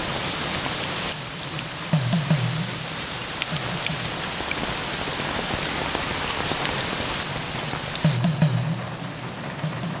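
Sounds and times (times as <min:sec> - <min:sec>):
steady rain falling: 0:00.0 - 0:10.0.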